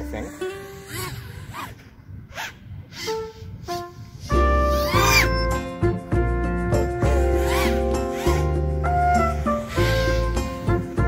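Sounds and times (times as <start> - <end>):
background music with deep bass: 4.3 - 11.0.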